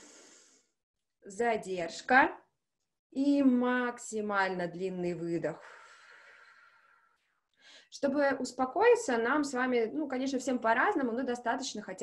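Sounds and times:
short intake of breath: 0.0s - 0.7s
woman's slow exhale: 0.0s - 0.7s.

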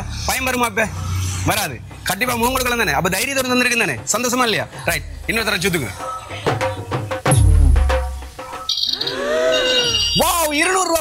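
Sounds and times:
high electronic beeping tones: 8.5s - 10.4s.

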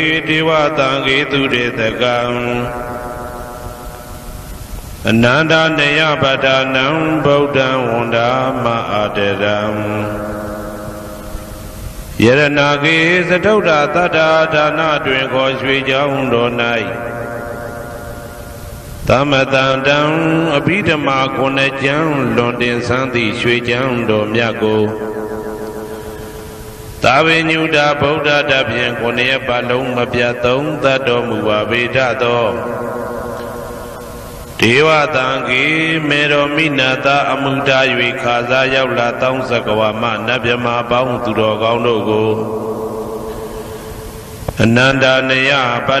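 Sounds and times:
steady hiss: 0.0s - 46.0s
chanting: 19.0s - 46.0s.

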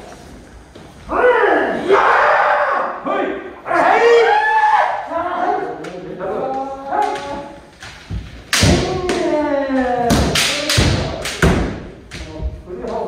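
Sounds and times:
bamboo swords striking armour: 8.1s - 9.3s, 10.0s - 12.3s.

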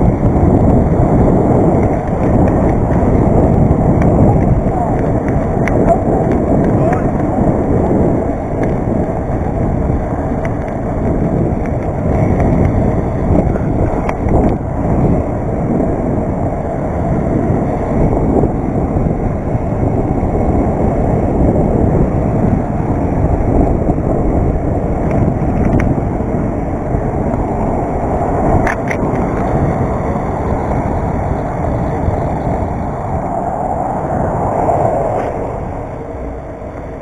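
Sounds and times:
bike tyres rumbling on asphalt: 0.0s - 37.0s
wind rush on microphone: 0.0s - 37.0s.

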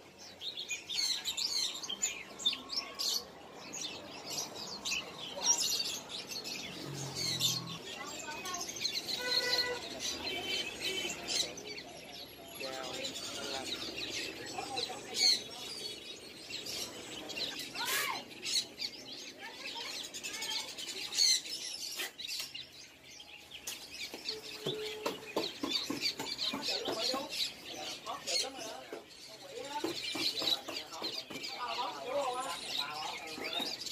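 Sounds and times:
songbirds chirping and twittering: 0.0s - 33.9s.

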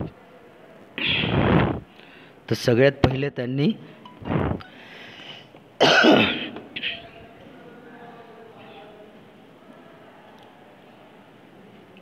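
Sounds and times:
man coughing: 5.8s - 7.1s.

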